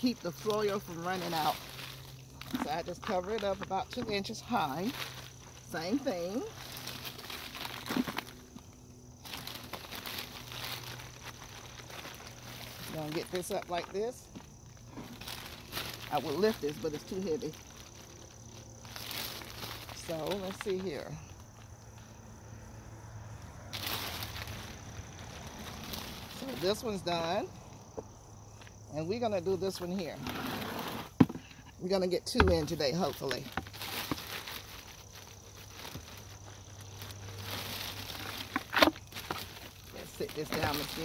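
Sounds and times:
potting soil rustling: 0:00.0 - 0:22.2, 0:23.7 - 0:27.5, 0:28.7 - 0:41.0.

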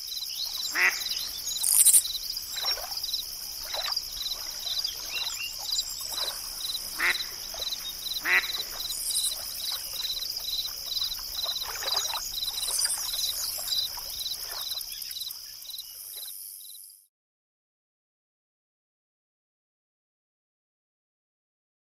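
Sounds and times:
crickets chirping: 0:00.0 - 0:17.0
bird chirps: 0:00.1 - 0:02.7, 0:03.7 - 0:11.6
ducks quacking: 0:00.6 - 0:02.0, 0:03.6 - 0:10.1.

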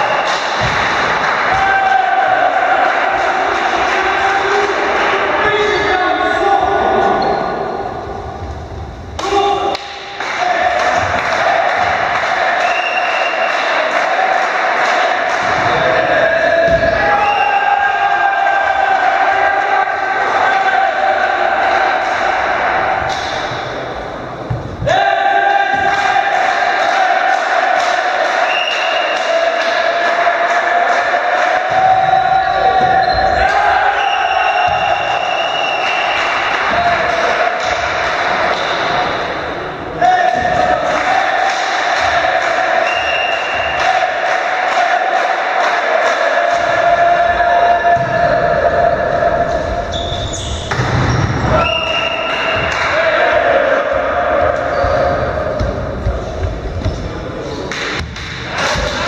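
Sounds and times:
players' voices: 0:00.0 - 0:59.0.

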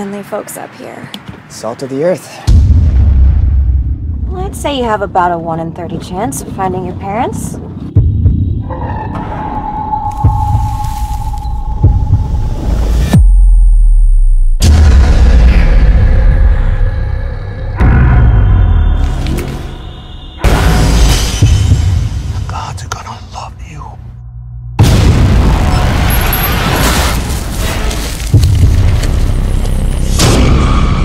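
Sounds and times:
loud boom: 0:02.5 - 0:04.5, 0:24.8 - 0:27.9
low rumble: 0:02.5 - 0:31.0
dark low drone: 0:07.5 - 0:24.8
deep pounding thuds: 0:07.8 - 0:09.5, 0:11.6 - 0:13.4.

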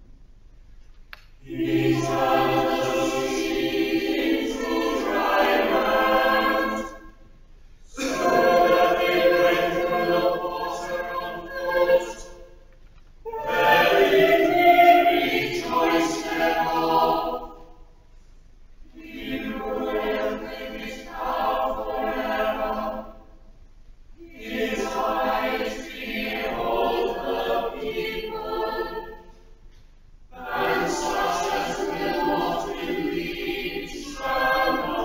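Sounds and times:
choir singing in parts: 0:01.4 - 0:18.0, 0:18.9 - 0:23.5, 0:24.2 - 0:29.6, 0:30.3 - 0:35.0.

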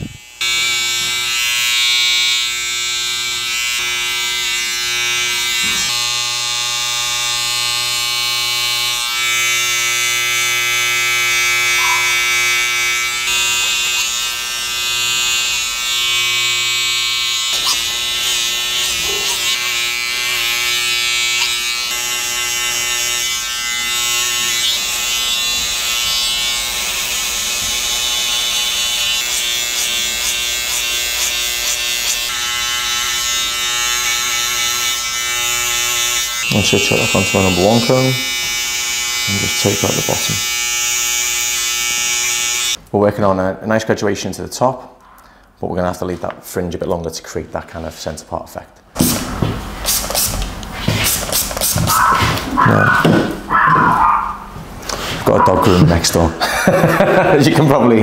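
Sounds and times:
electric hair clippers buzzing: 0:00.0 - 0:42.8, 0:49.0 - 0:57.7.

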